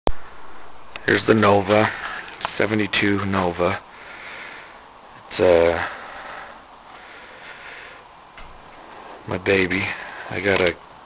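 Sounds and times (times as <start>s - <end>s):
steady background hiss: 0.1s - 11.0s.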